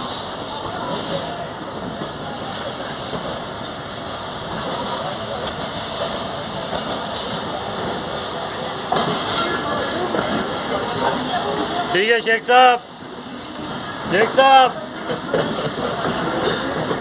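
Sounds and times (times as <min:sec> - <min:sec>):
train coach and wheels rolling: 0:00.0 - 0:17.0.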